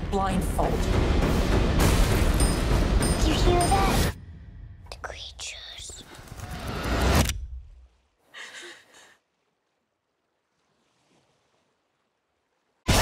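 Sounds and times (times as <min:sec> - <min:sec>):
low rumble: 0:00.0 - 0:05.6
eerie whispering voices: 0:04.8 - 0:06.8.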